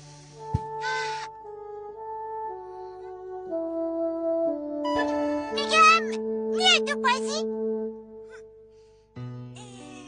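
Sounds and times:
cartoon music of held notes: 0.8s - 9.0s
squeaky high-pitched cartoon voice: 9.6s - 10.0s.

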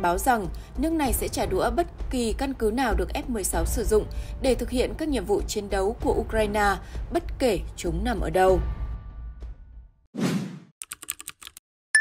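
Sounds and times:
keyboard typing clicks: 10.8s - 12.0s.

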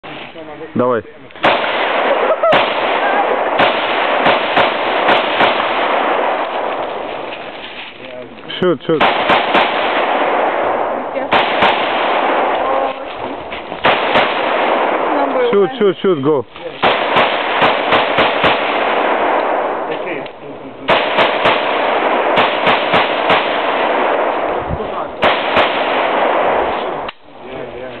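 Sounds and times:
gunshot echo through woods: 1.4s - 7.4s, 8.9s - 15.5s, 16.6s - 20.2s, 20.9s - 27.3s
rifle shots: 1.4s - 7.5s, 8.6s - 15.8s, 16.6s - 27.3s.

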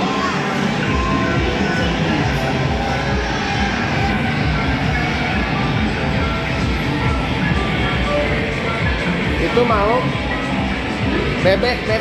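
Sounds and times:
arcade electronic music: 0.0s - 12.0s.

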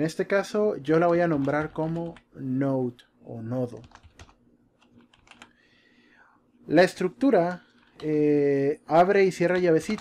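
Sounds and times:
keyboard typing: 1.0s - 2.3s, 3.7s - 5.6s, 9.4s - 10.0s.

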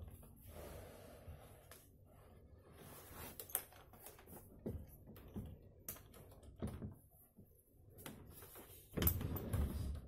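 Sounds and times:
faint breathing: 0.4s - 3.2s.

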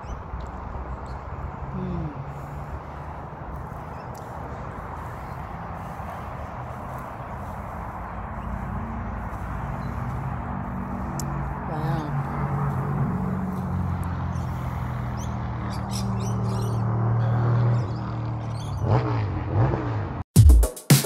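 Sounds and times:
birds chirping: 0.0s - 19.0s
highway traffic hum: 0.0s - 20.3s
vehicle engine drone: 0.0s - 20.3s.

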